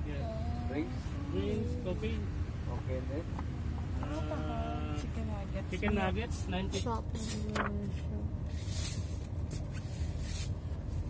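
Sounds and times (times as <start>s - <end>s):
car engine idling: 0.0s - 9.4s.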